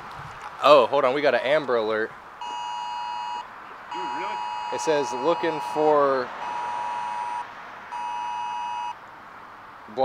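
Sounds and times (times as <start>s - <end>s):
two-pitch alert beep: 2.4s - 5.8s.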